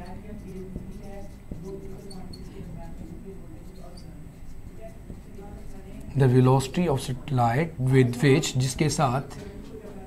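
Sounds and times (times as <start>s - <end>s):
marker squeaking on whiteboard: 0.0s - 5.4s
low steady hum: 0.0s - 10.0s.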